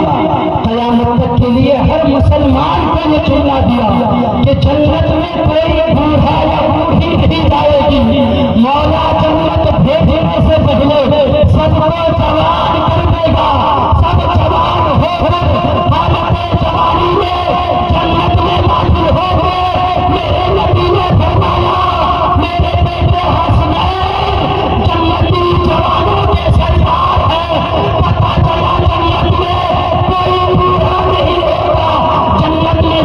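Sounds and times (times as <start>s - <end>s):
man chanting through public address: 0.0s - 33.0s.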